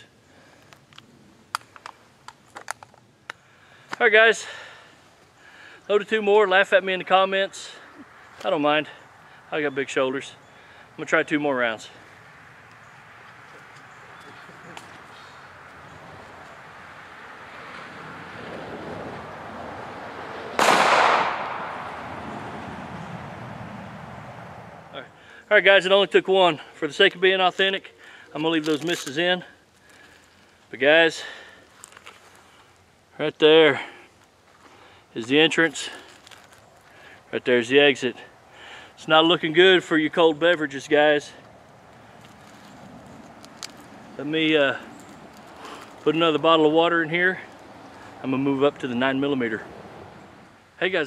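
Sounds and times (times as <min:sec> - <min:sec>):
pistol shot with echo: 0:20.6 - 0:22.0.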